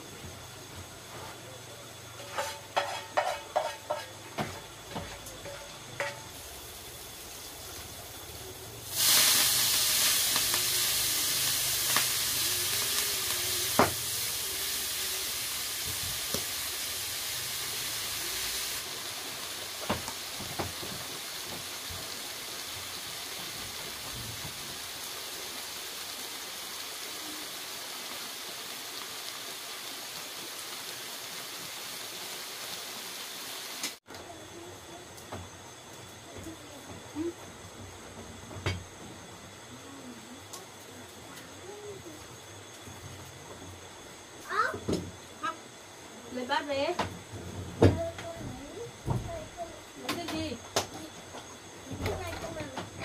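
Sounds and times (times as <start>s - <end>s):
greens sizzling in frying pan: 0.0s - 53.0s.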